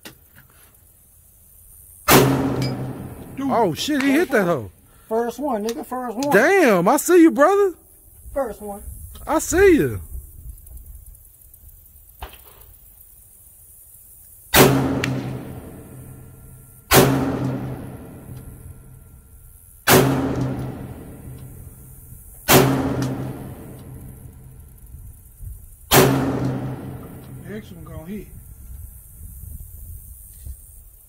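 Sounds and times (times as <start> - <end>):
rifle shots: 2.1 - 4.6, 14.6 - 16.3, 16.9 - 18.6, 19.9 - 21.8, 22.4 - 24.6, 25.9 - 27.6.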